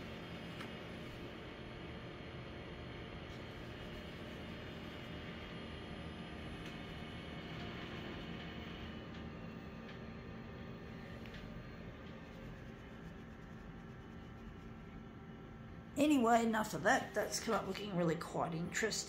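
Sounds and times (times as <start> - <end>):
low hum and hiss: 0.0 - 19.0.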